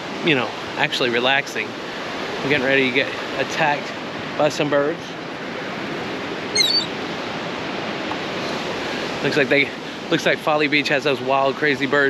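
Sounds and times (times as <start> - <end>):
ocean surf: 0.0 - 12.0
wind: 0.0 - 12.0
seagull call: 6.5 - 7.0.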